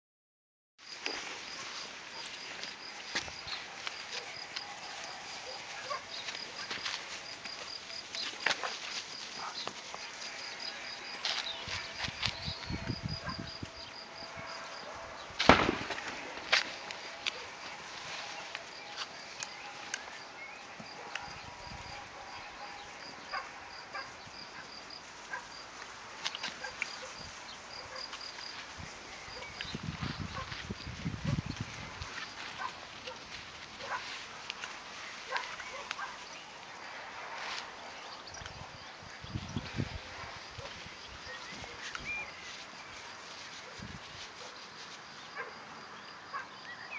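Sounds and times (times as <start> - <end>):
puppies scuffling on dry ground: 0.9 - 13.0, 16.0 - 21.2, 24.0 - 38.2, 39.6 - 45.6.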